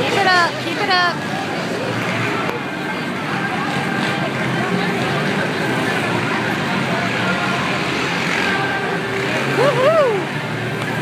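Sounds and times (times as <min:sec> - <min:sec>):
crowd chatter: 0:00.0 - 0:11.0
dirt bike engines racing: 0:00.0 - 0:11.0.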